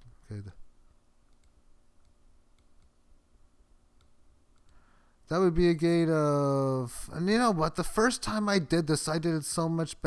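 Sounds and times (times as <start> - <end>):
faint computer mouse clicks: 1.3 - 3.0, 4.0 - 4.8.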